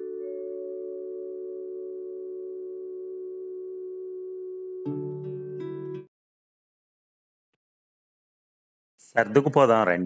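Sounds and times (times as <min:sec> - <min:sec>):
bell-like mallet chord: 0:00.0 - 0:06.0.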